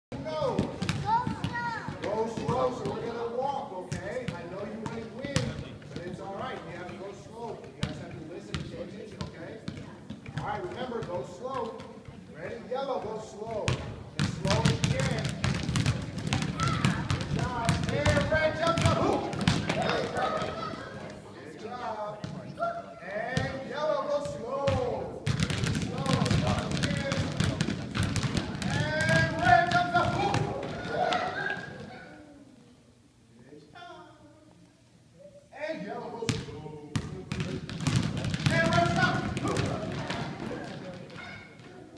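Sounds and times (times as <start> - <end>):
basketballs bouncing on gym floor: 0.4 - 3.1, 3.9 - 7.0, 7.6 - 12.2, 13.5 - 20.7, 24.2 - 31.0, 36.3 - 41.8
children calling and chattering: 19.7 - 21.6, 30.6 - 32.6.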